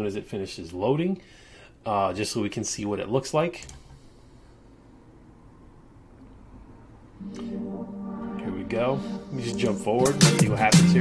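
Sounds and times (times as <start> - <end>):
faint room hum and hiss: 0.0 - 10.0.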